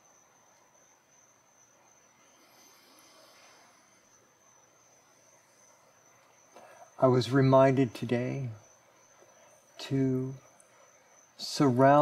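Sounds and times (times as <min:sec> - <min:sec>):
faint high-pitched whine: 0:00.0 - 0:12.0.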